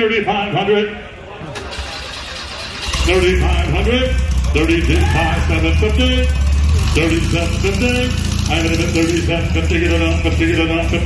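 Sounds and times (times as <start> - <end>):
car engine cranking and running: 1.6 - 11.0.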